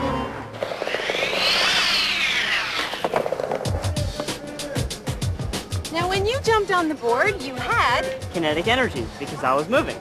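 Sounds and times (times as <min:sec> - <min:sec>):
music: 0:00.0 - 0:00.5, 0:03.4 - 0:10.0
skateboard wheels rolling on wood: 0:00.4 - 0:04.4.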